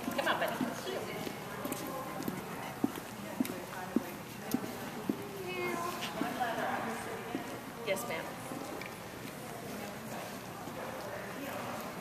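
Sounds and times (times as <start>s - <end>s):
distant voices in a hall: 0.0s - 12.0s.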